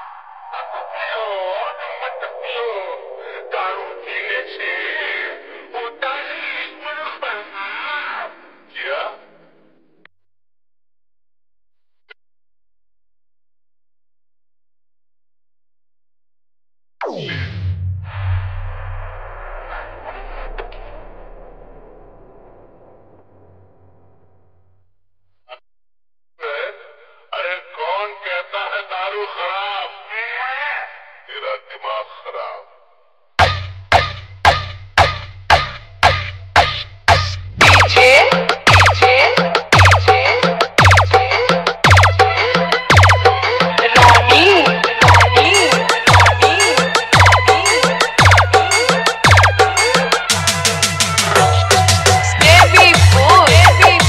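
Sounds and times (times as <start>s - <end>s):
filtered voice sample with pitch glides: 0.0s - 9.8s, 37.6s - 49.0s, 52.1s - 54.0s
processed vocal in dance music: 0.6s - 6.9s, 37.6s - 50.3s, 51.2s - 54.0s.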